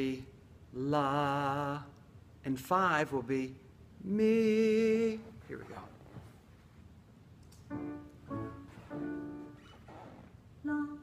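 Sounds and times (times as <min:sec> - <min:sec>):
piano notes: 0:07.7 - 0:10.8.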